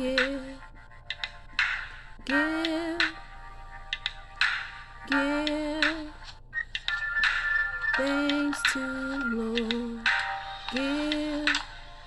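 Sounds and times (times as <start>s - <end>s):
high electronic tone: 6.9s - 9.6s.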